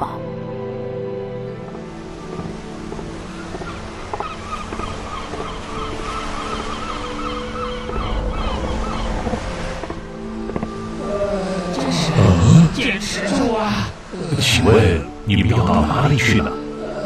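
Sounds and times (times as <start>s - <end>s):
surf washing: 1.7s - 15.3s
gulls calling: 1.8s - 17.0s.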